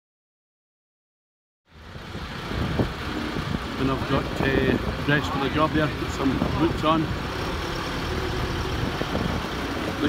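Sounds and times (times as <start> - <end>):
diesel engine idling: 1.7 - 10.0.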